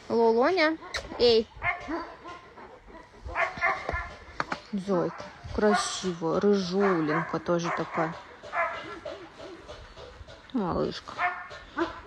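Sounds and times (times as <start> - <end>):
dog barking: 0.8 - 6.1, 6.7 - 9.7, 11.2 - 12.0.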